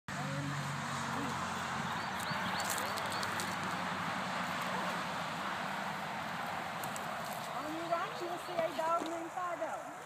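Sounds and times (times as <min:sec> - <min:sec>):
wagon rolling over grass: 0:00.6 - 0:10.0
footsteps: 0:01.0 - 0:10.0.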